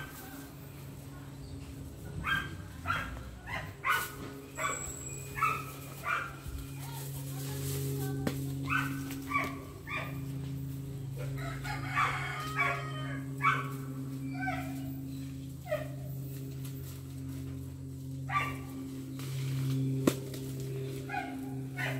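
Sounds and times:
steady low hum: 0.0s - 21.9s.

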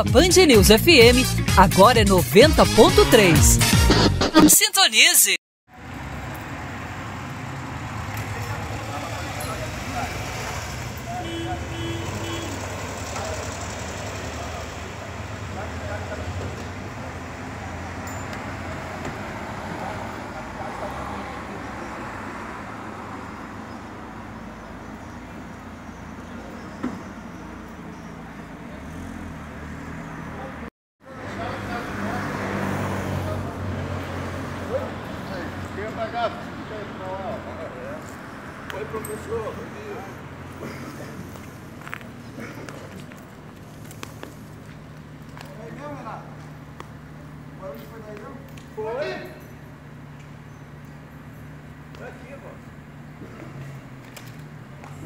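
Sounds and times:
traffic noise: 0.0s - 3.6s, 4.9s - 55.0s
low street rumble: 5.7s - 55.0s.

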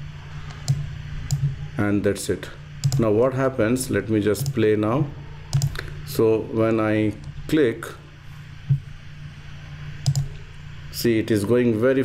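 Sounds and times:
electrical hum and hiss: 0.0s - 12.0s
computer mouse click: 2.8s - 3.0s, 5.5s - 5.8s, 10.0s - 10.4s.

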